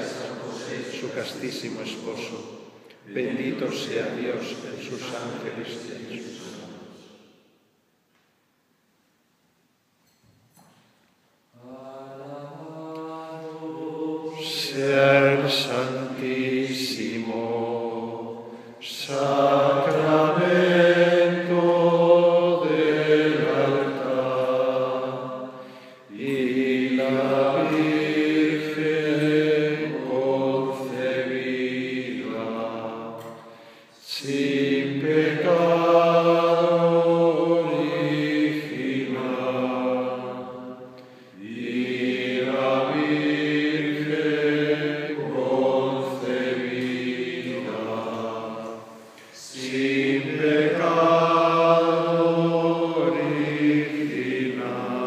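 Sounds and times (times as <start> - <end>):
voices chanting a hymn: 0.0 - 7.6, 11.5 - 55.0.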